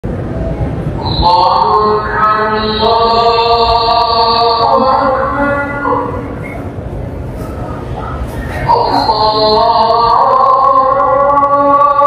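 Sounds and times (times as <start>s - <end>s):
man chanting call to prayer: 1.0s - 6.6s, 8.6s - 12.0s.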